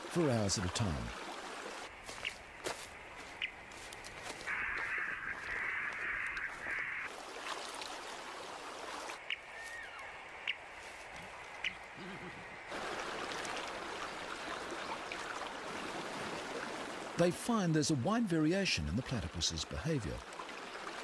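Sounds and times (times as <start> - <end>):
harsh bird call: 4.5 - 7.1.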